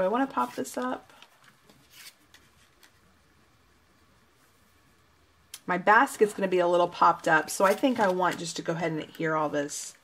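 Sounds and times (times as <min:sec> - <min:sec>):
soft sliding hiss: 0:00.0 - 0:09.4
cardstock rustling: 0:01.7 - 0:03.0, 0:07.5 - 0:08.5.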